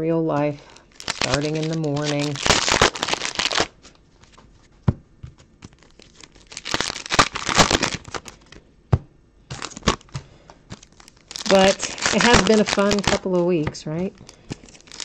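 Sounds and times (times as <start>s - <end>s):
foil wrappers tearing and crinkling: 0.6s - 4.4s, 5.6s - 8.6s, 9.5s - 15.0s.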